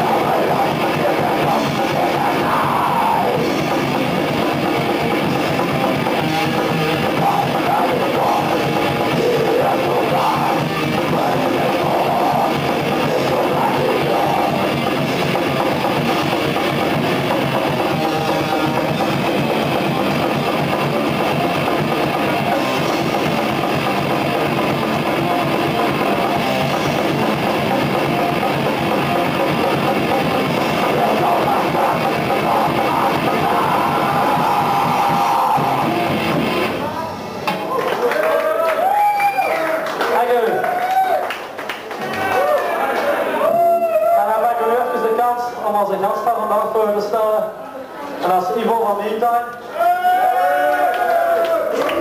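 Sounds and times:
death metal band playing: 0.0s - 37.8s
drum kit: 0.0s - 37.9s
distorted electric guitars: 0.0s - 39.4s.

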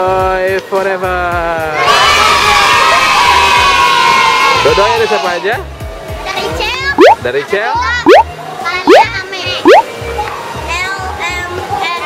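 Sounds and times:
girls cheering and screaming: 1.8s - 4.6s.

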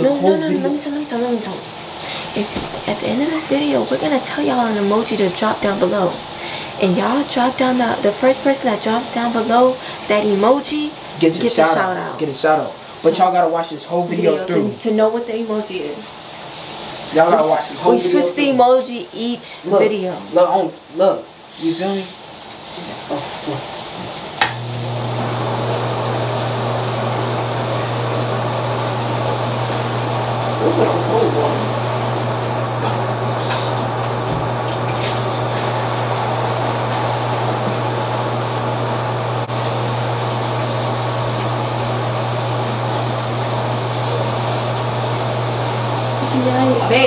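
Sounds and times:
shower water spraying: 0.0s - 47.0s
shower click: 2.0s - 4.0s.

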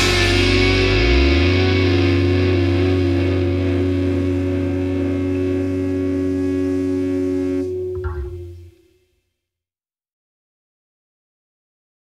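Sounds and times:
distorted electric guitar chord ringing: 0.0s - 9.0s.

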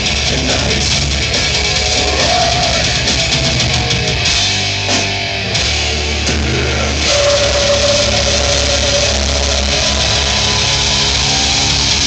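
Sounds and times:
death metal band playing live: 0.0s - 12.0s.

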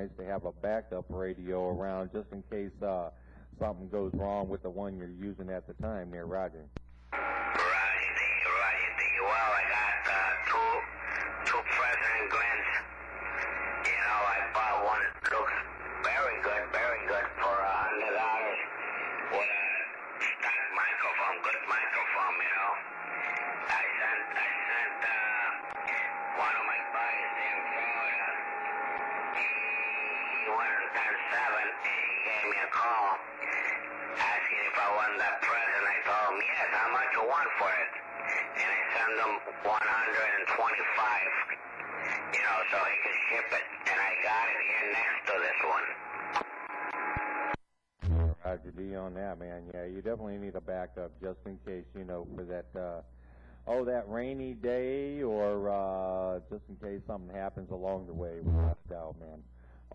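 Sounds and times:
man's voice over radio speaker: 0.0s - 6.7s, 7.4s - 46.1s, 48.2s - 59.4s
low hum: 48.0s - 48.6s, 58.1s - 59.7s.

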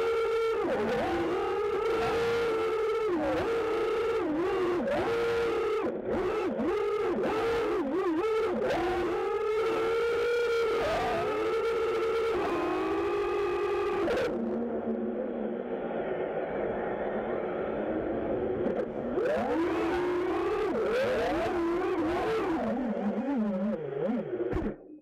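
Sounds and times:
drone motors whining: 0.0s - 15.4s.

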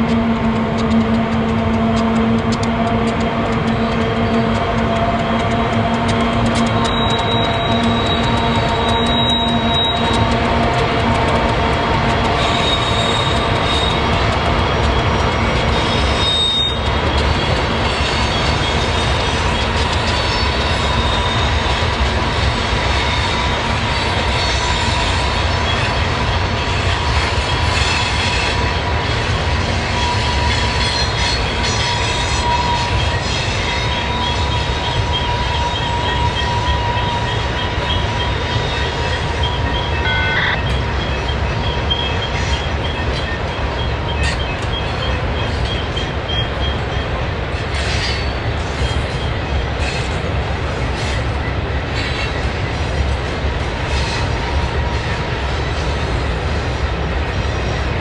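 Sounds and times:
train cars rumbling: 0.0s - 58.0s
high wheel squeal: 1.7s - 28.8s, 29.6s - 50.1s.

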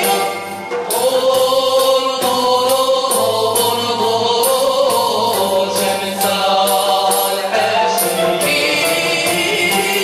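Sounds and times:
regular percussion beat: 0.0s - 10.0s
violins and cello bowing a melody: 0.0s - 10.0s
voices singing in unison: 0.0s - 10.0s.

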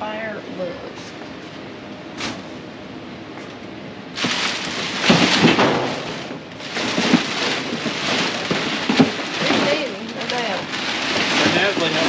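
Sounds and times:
plastic bag crinkling: 4.2s - 12.0s.

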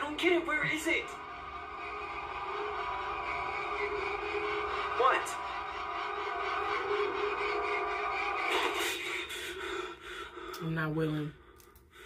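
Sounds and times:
layered sustained drone: 0.0s - 10.8s.

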